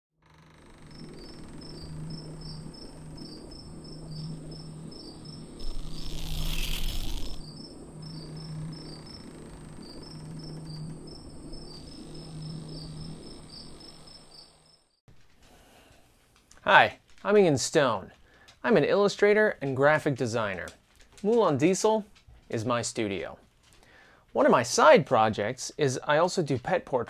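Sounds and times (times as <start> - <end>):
low pulsing hum: 0.3 - 14.4
crickets chirping: 0.4 - 15.0
whooshing rush of noise: 5.4 - 7.4.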